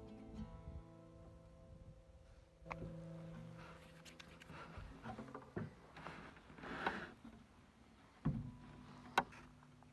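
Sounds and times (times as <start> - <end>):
faint knocks and rustles: 2.7 - 9.8.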